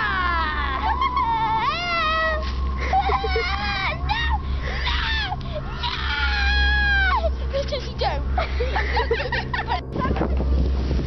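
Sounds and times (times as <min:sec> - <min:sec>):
girl wailing: 0:00.0 - 0:07.7.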